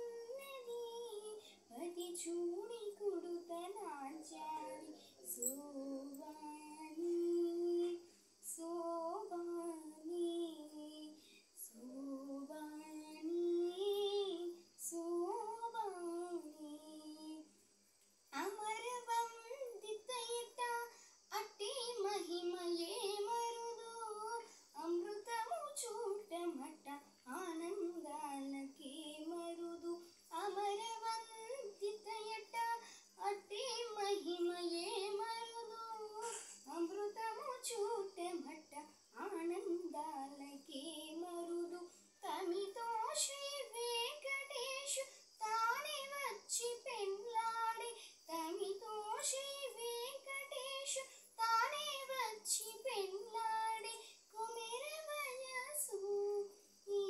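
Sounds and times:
girl singing solo: 0.0 - 17.5, 18.3 - 57.0
girl breathing: 32.8 - 33.2.

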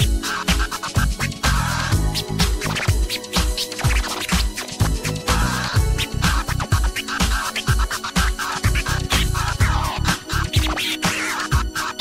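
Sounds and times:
dj scratching: 0.0 - 12.0
house music kick drum: 0.0 - 12.0.

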